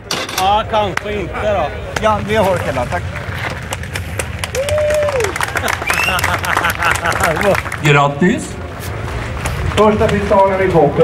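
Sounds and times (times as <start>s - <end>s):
crowd applauding: 3.6s - 8.2s.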